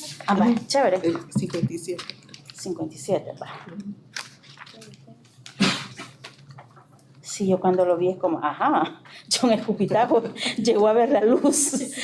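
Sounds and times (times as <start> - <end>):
book pages rustling: 0.0 - 2.8, 3.6 - 7.1.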